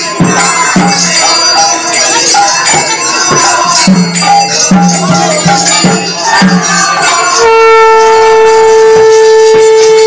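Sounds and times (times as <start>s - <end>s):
conch shell blown: 7.3s - 10.0s.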